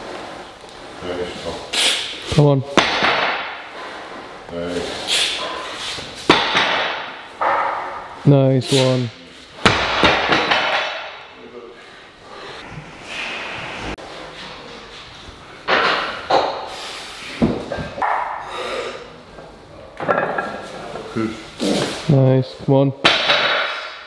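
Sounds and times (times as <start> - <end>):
plates rattling: 20.0 - 21.1.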